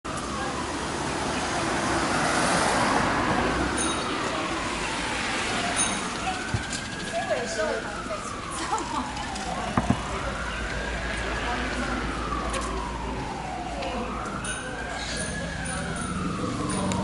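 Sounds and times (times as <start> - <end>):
passersby talking: 0.1 - 17.0
traffic passing: 0.1 - 17.0.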